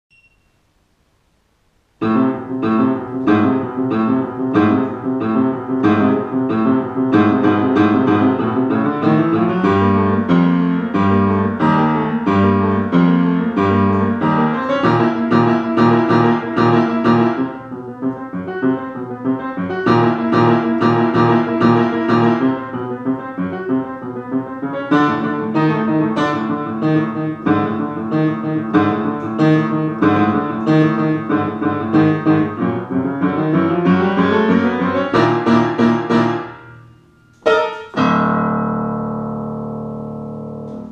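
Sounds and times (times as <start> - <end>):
upright piano playing: 2.0 - 40.9.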